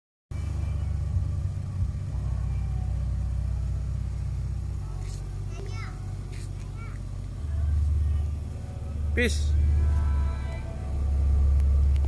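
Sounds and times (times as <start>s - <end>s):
car engine idling: 0.3s - 12.0s.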